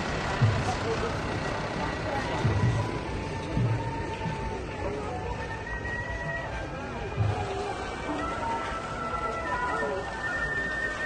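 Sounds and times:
float rumbling along: 0.0s - 11.0s.

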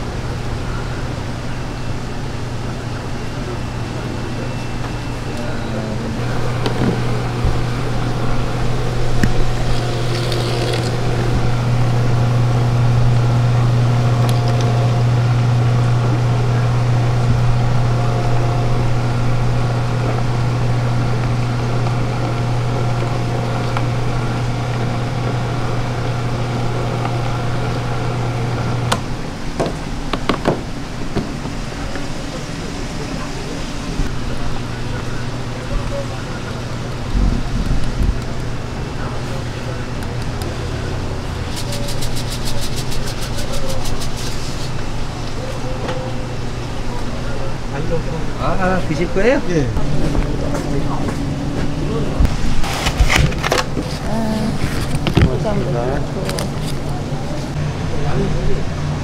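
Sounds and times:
electric motor hum: 0.0s - 59.0s.

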